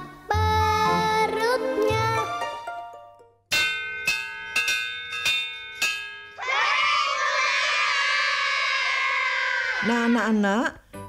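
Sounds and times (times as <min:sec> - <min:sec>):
children shouting together: 0:06.4 - 0:09.9.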